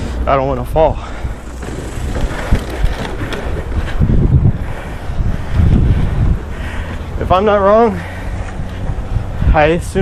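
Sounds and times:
skate wheels rolling on pavement: 0.0s - 10.0s
wind buffeting microphone: 0.0s - 10.0s.

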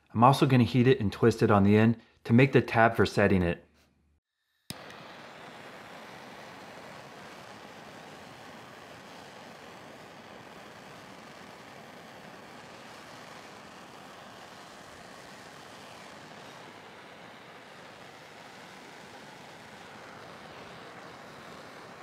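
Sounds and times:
gas blowtorch hissing: 4.7s - 22.0s.

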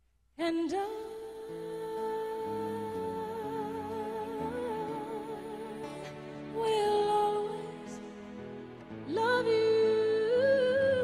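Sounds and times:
soft backing chords: 0.8s - 11.0s.

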